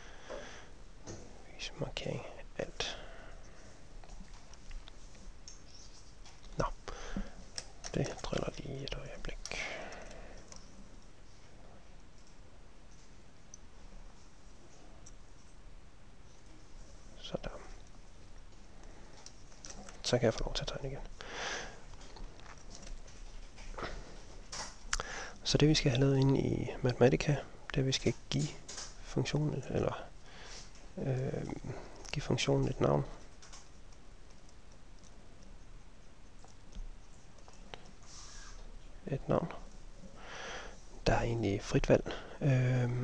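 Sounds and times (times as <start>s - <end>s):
man muttering quietly: 6.5s - 10.6s, 30.9s - 33.2s.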